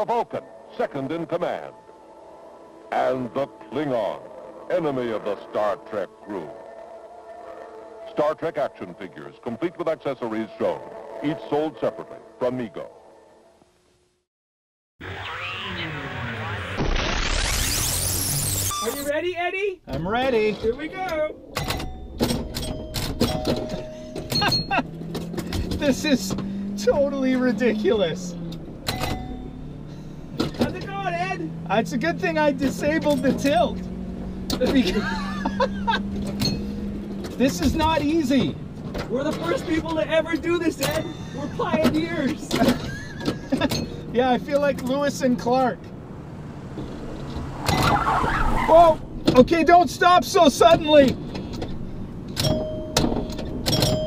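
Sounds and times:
pinball flippers and bumpers clicking: 21.4s - 25.8s, 28.5s - 29.4s
van rumbling on gravel road: 22.0s - 54.0s.

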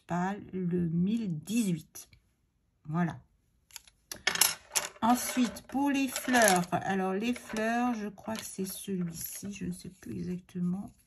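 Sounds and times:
wooden pencils clicking: 3.7s - 6.7s, 7.3s - 8.7s.

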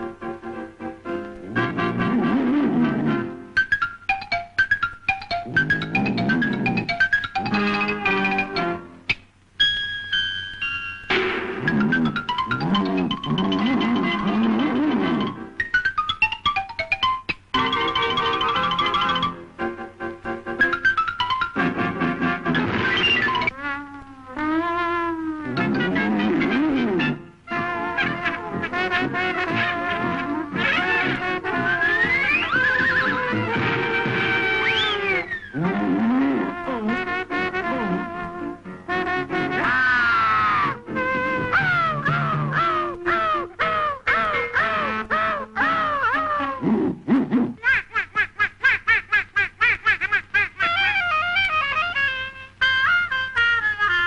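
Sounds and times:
woodwind music notes: 0.0s - 9.0s, 20.6s - 47.4s, 50.7s - 54.0s
cartoon wailing cry: 11.6s - 15.4s, 39.4s - 46.7s
cartoon character laughing: 41.2s - 53.2s.

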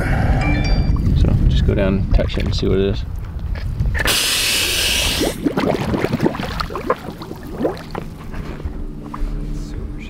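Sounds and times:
water bubbling and splashing: 5.0s - 8.4s.

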